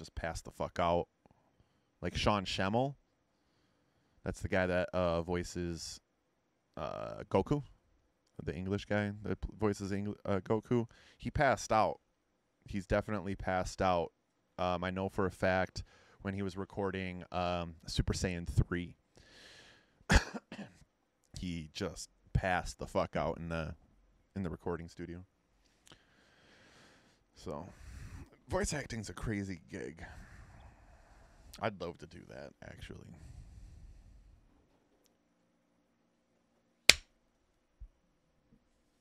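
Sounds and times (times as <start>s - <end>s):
man breathing faintly: 3.3s - 4.2s, 10.9s - 11.2s, 15.8s - 16.2s, 19.1s - 20.0s, 25.6s - 28.5s, 30.0s - 31.6s, 33.0s - 34.5s
man laughing or coughing: 20.1s - 20.8s.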